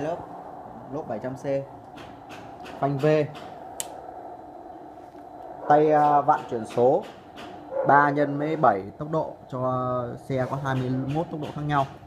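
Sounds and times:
steady background hum: 0.0 - 12.0
sharp click: 1.9 - 4.0.

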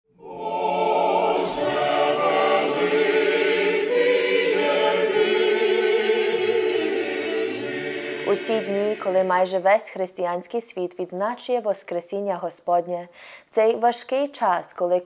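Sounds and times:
choir singing held chords: 0.1 - 9.8.

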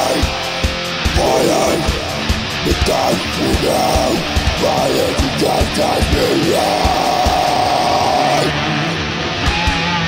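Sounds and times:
harsh vocal scream: 0.0 - 9.0
distorted electric guitar riff: 0.0 - 10.0.

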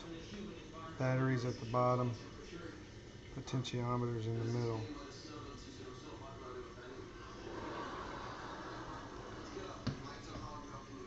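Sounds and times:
water heating with steady hiss: 0.0 - 11.0.

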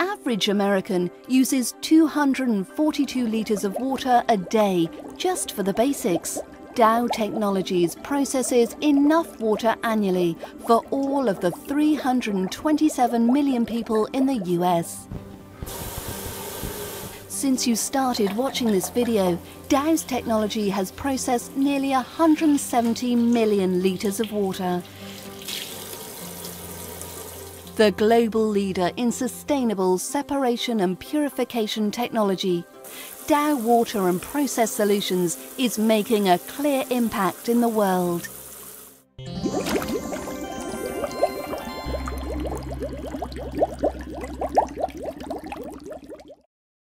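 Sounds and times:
bubbling water blips: 2.8 - 25.4, 32.8 - 38.6, 39.3 - 46.5
faucet running into sink: 15.6 - 17.3, 18.0 - 27.8, 32.9 - 39.0, 39.6 - 45.6
water splashing over hands: 39.5 - 42.8.

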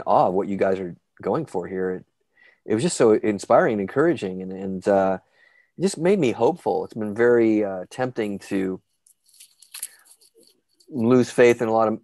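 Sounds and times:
man breathing faintly: 5.2 - 5.8.

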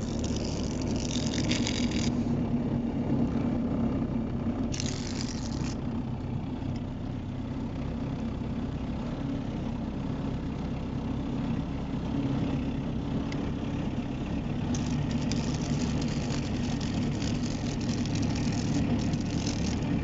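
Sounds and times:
grass brushing against car: 0.0 - 2.4, 4.7 - 5.8, 14.7 - 20.0
car engine humming: 14.2 - 20.0.

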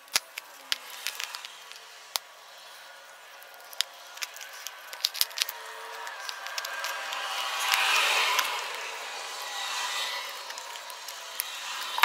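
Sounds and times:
scraping rubbing noise: 0.8 - 12.0.

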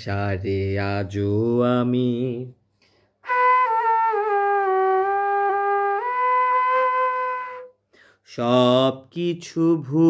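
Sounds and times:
bamboo flute playing: 3.2 - 7.8.

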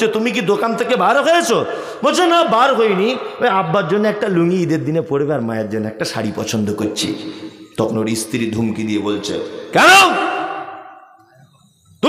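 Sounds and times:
man speaking over public address: 0.0 - 10.3.

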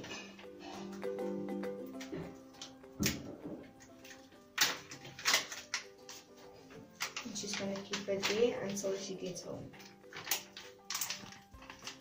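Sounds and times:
soft background music: 0.0 - 12.0
plastic bag crinkling: 3.7 - 12.0.

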